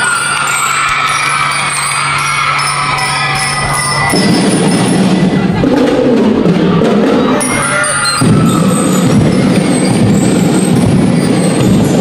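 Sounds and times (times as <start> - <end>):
drum and lyre band: 0.0 - 12.0.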